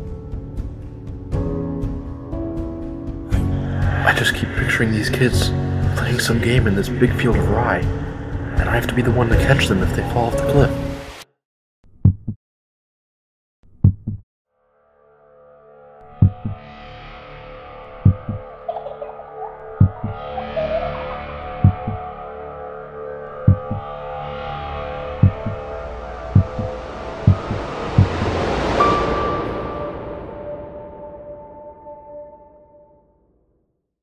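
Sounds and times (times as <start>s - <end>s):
heartbeat double thump: 12.0s - 12.4s, 13.8s - 14.2s, 16.2s - 16.6s, 18.0s - 18.4s, 19.8s - 20.2s, 21.6s - 22.0s, 23.4s - 23.8s, 25.2s - 25.6s, 26.4s - 28.4s
rising whoosh: 24.7s - 31.8s.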